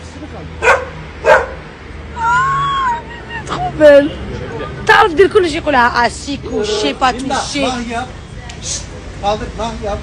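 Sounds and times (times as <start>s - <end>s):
dog barking: 0.6s - 1.6s.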